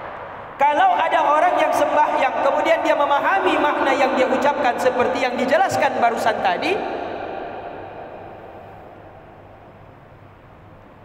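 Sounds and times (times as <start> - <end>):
amplified man's voice reverberating: 0.6 - 8.6.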